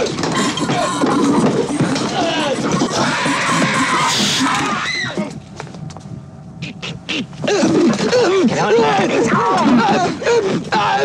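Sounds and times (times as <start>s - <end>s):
people screaming and shouting: 0.0s - 5.4s.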